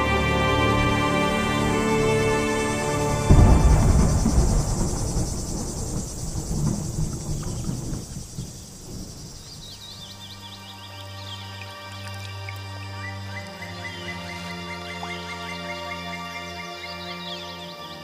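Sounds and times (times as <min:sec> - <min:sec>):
low music drone: 0:00.0 - 0:05.9, 0:10.2 - 0:18.0
low rumble: 0:00.8 - 0:10.0
insects chirring: 0:00.8 - 0:18.0.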